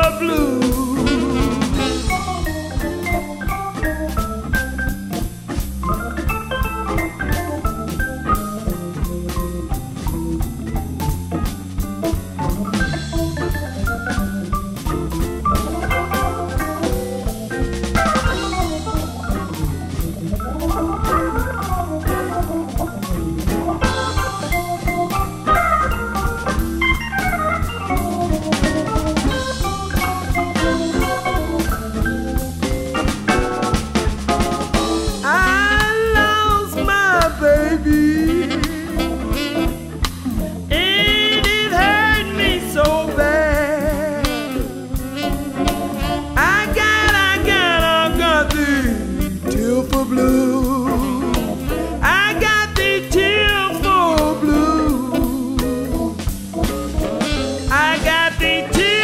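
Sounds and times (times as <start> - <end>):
drum kit steady beat: 0.0 - 59.0
organ melody: 0.0 - 59.0.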